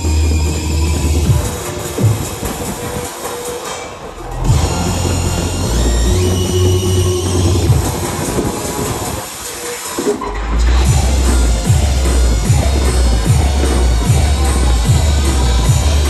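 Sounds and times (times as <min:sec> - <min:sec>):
loud electronic bass music: 0:00.0 - 0:03.2, 0:04.2 - 0:16.0.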